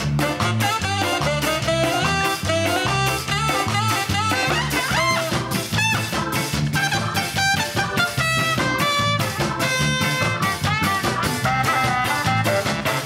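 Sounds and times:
held horn notes: 0:00.0 - 0:13.0
ska jazz band playing: 0:00.0 - 0:13.0.

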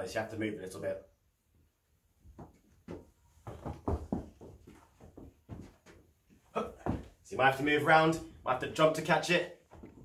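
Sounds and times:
footsteps scuffing: 0:02.2 - 0:07.2.

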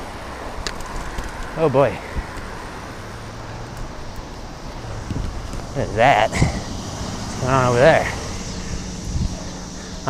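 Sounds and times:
bicycle tyres rolling on pavement: 0:00.0 - 0:10.0
wind on microphone: 0:04.8 - 0:10.0.

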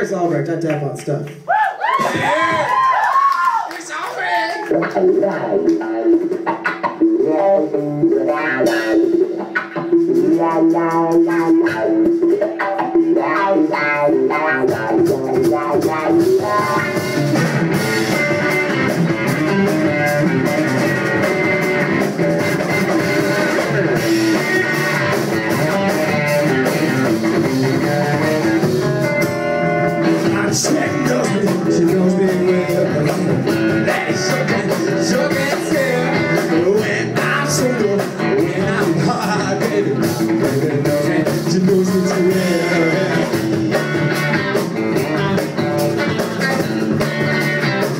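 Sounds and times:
rock band playing live: 0:04.1 - 0:47.9.

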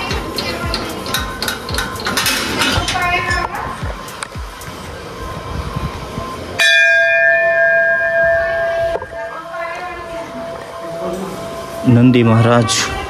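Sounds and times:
temple bell ringing: 0:06.4 - 0:13.0.

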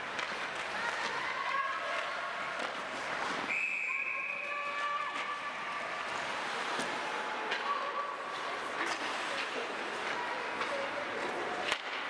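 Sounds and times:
ice rink noise: 0:00.0 - 0:12.0.

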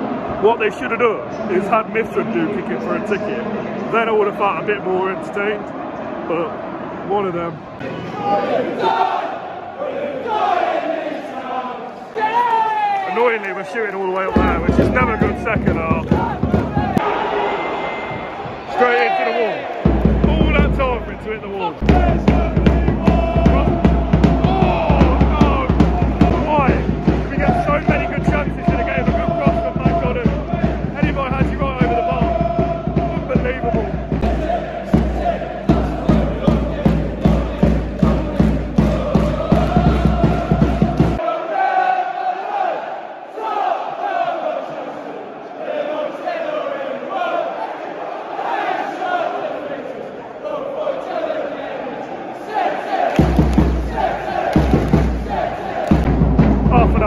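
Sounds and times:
football crowd singing a chant: 0:00.0 - 0:12.5, 0:14.2 - 0:57.0
steady repeated drum beat: 0:14.3 - 0:17.0, 0:19.8 - 0:41.2, 0:53.1 - 0:57.0.

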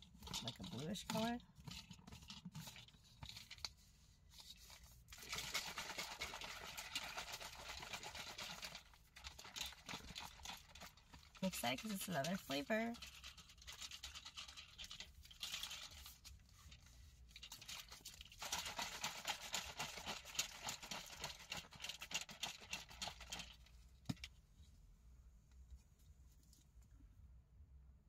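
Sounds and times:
plastic shaker bottle rattling: 0:00.0 - 0:24.3.

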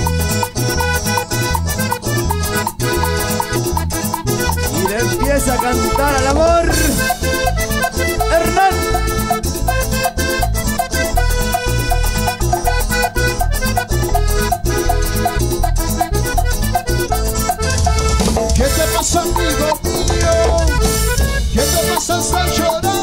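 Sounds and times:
live band playing dance music: 0:00.0 - 0:23.0.

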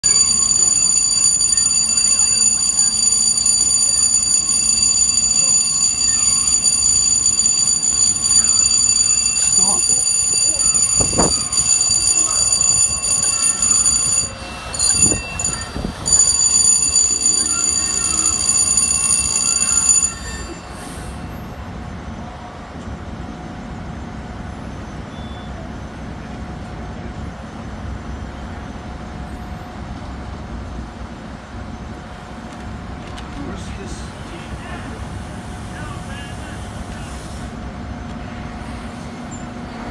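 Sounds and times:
high-pitched alarm tone: 0:00.0 - 0:21.8
street noise: 0:00.0 - 0:39.9.

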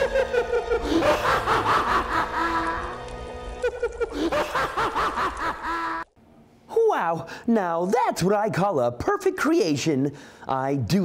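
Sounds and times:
background music: 0:00.0 - 0:06.0
man and woman laughing theatrically: 0:00.0 - 0:06.0.

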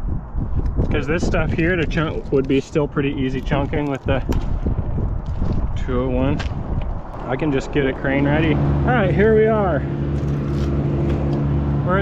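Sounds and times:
engine running steadily: 0:05.8 - 0:12.0.

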